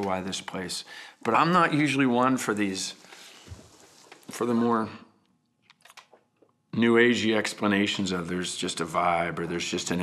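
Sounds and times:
man speaking: 0:00.0 - 0:03.0, 0:04.3 - 0:05.0, 0:06.8 - 0:10.0.

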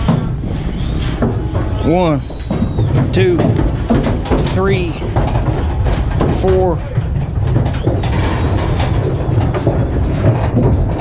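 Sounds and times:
hooves clattering on metal floor: 0:00.0 - 0:11.0
steady low rumble: 0:00.0 - 0:11.0.

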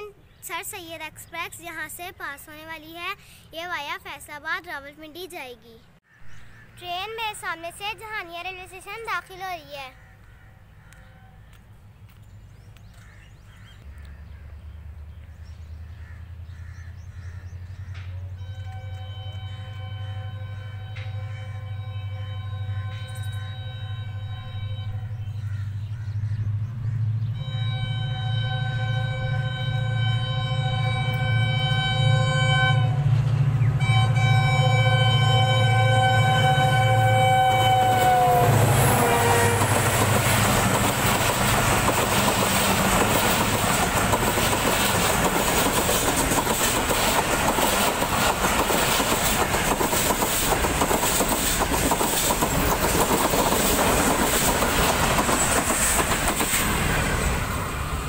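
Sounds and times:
locomotive engine rumble: 0:10.6 - 0:58.0
train horn blasts: 0:18.3 - 0:25.8, 0:27.1 - 0:40.0
train wheels clattering on rails: 0:39.4 - 0:57.4.

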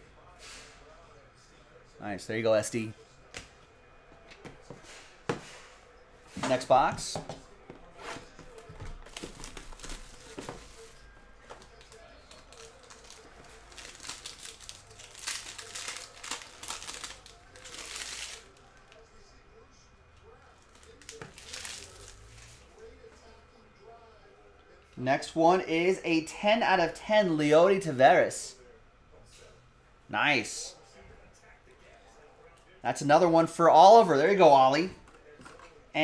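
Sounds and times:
plastic wrap tearing and crinkling: 0:09.0 - 0:11.0, 0:11.7 - 0:19.0, 0:20.6 - 0:22.6.

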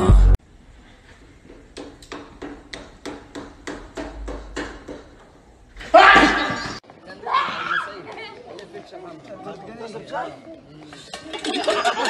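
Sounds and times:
hammer-like knocking: 0:01.8 - 0:05.3.

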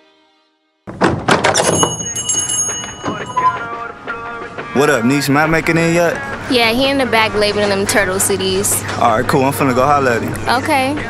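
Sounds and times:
knocks and thuds: 0:00.9 - 0:02.1
brief high ringing tones: 0:01.6 - 0:03.9
song music: 0:02.5 - 0:11.0.

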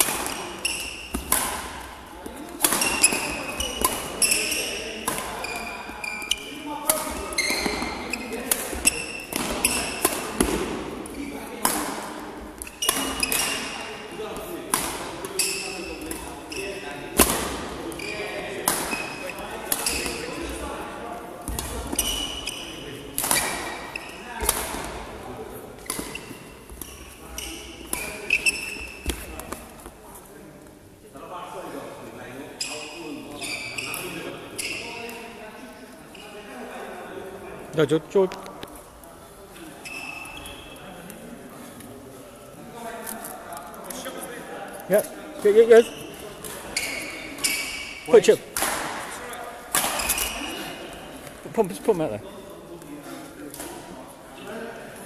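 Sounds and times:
racket hitting shuttlecock: 0:00.0 - 0:05.5, 0:06.8 - 0:13.8, 0:14.4 - 0:16.3, 0:17.2 - 0:17.6, 0:18.6 - 0:20.2, 0:23.2 - 0:25.0, 0:25.8 - 0:27.1, 0:46.4 - 0:49.1, 0:49.7 - 0:50.4
shoes squeaking on court: 0:00.2 - 0:01.4, 0:02.2 - 0:11.6, 0:12.4 - 0:14.5, 0:15.2 - 0:17.1, 0:17.9 - 0:20.6, 0:21.6 - 0:24.5, 0:25.8 - 0:29.8, 0:32.6 - 0:35.2, 0:39.6 - 0:40.8, 0:45.4 - 0:48.4, 0:49.9 - 0:52.1.

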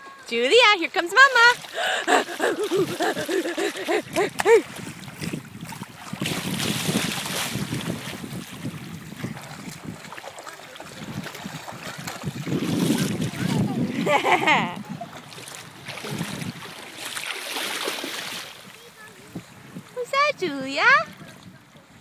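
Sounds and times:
wind buffeting microphone: 0:00.8 - 0:22.0
lapping water: 0:00.9 - 0:22.0
toddler splashing through water: 0:01.3 - 0:19.1.

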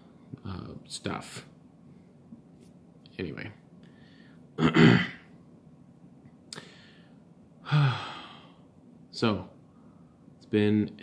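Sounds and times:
man sighing: 0:07.6 - 0:08.6.

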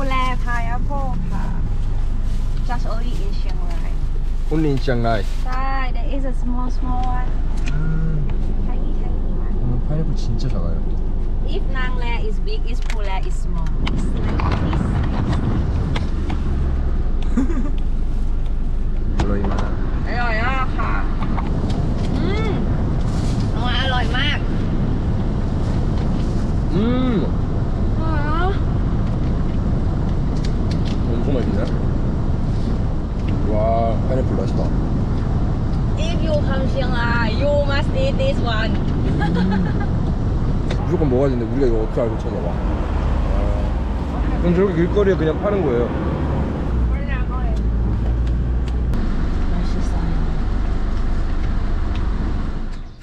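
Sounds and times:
car engine rumble: 0:00.0 - 0:53.0
road noise inside car: 0:00.0 - 0:53.0.

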